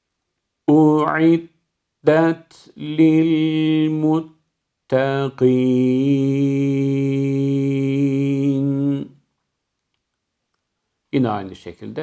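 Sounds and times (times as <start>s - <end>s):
man chanting melodically: 0.7s - 9.2s, 11.2s - 12.0s.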